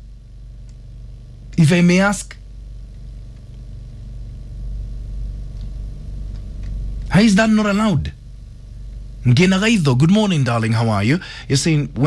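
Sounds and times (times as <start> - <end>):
low hum or rumble: 0.0 - 12.0
faint ticks: 0.6 - 0.8.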